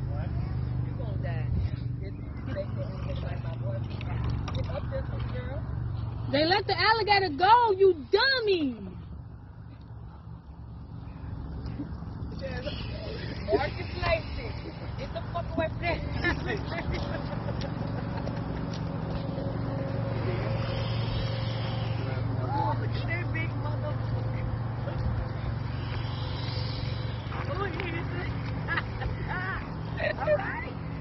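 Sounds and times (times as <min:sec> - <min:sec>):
low motor drone: 0:00.0 - 0:31.0
indistinct voices: 0:18.9 - 0:31.0.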